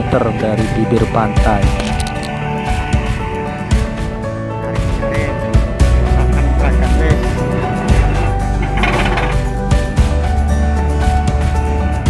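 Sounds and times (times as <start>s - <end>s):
background music with strong bass: 0.0s - 12.0s.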